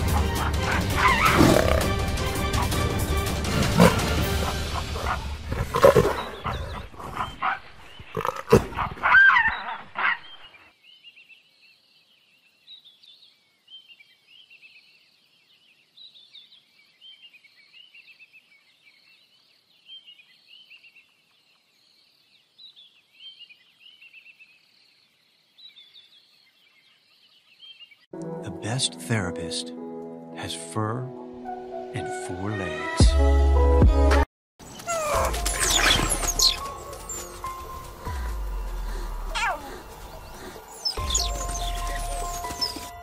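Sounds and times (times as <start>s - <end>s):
leopard snarling: 0.0s - 9.2s.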